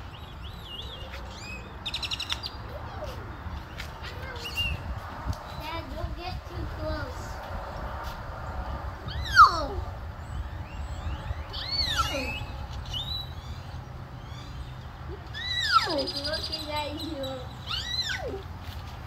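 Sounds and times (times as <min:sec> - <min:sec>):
steady low rumble: 0:00.0 - 0:15.3
bird whistled squawks: 0:10.7 - 0:14.6, 0:15.4 - 0:18.3.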